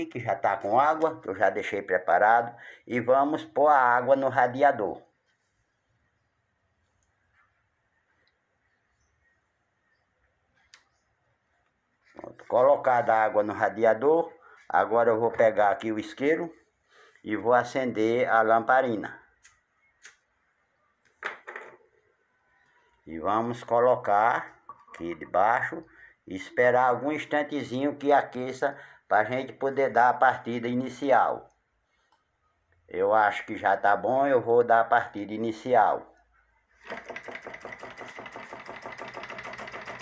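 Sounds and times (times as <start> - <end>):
small engine clattering: 36.8 - 40.0.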